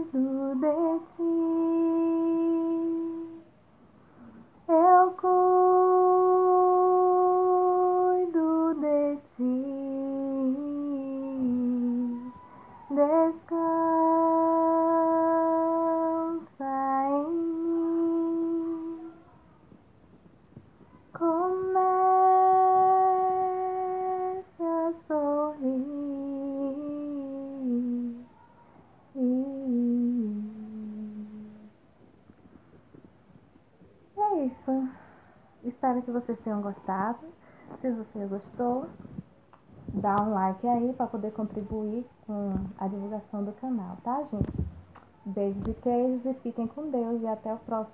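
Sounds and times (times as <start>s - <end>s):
woman singing wordless notes: 0.0s - 3.6s, 4.6s - 19.3s, 20.7s - 31.8s, 34.2s - 39.2s, 39.9s - 44.6s, 45.2s - 47.9s
woman humming: 9.6s - 19.2s, 29.2s - 31.7s.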